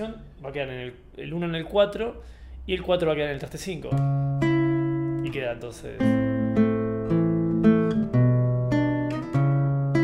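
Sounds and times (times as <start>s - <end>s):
classical guitar fingerpicked: 3.9s - 10.0s.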